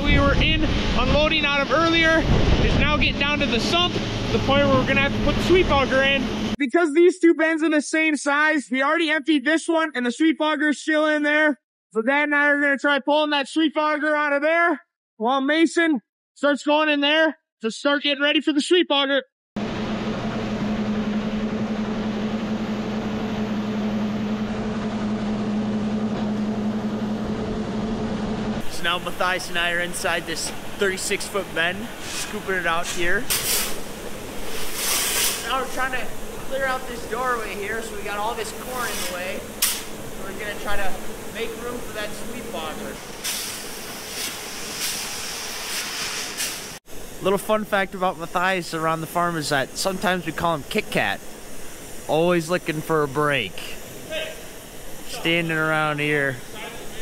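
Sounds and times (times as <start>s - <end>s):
constant low hum: 0.0s - 6.6s, 19.6s - 45.3s, 46.4s - 57.0s
grain machinery running: 0.0s - 6.6s, 19.6s - 46.6s, 52.1s - 53.8s, 55.0s - 57.0s
steady hiss: 28.6s - 57.0s
corn kernels sliding and rattling: 38.8s - 39.8s.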